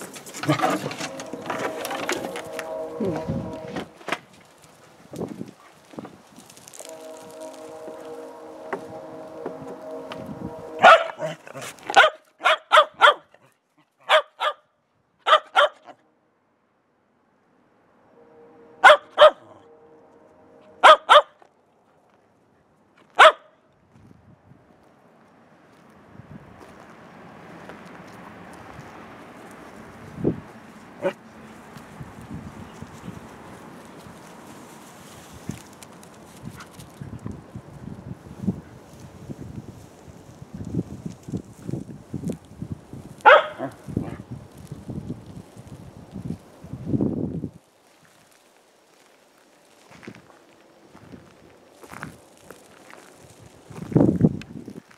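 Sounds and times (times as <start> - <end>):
footsteps on gravel: 0.0 - 12.2, 23.9 - 31.0, 47.9 - 54.9
dog barking: 10.8 - 14.6, 15.2 - 16.0, 18.8 - 19.6, 20.8 - 21.4, 23.2 - 23.6, 43.2 - 44.2.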